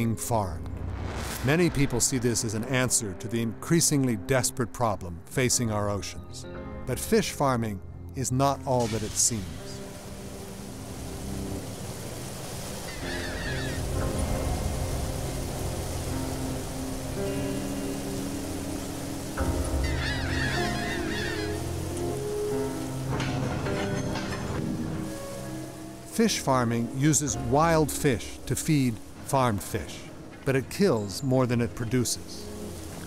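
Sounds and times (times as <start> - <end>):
music with low sustained notes: 0.0 - 33.0
birds squawking: 12.8 - 14.1, 19.5 - 23.1.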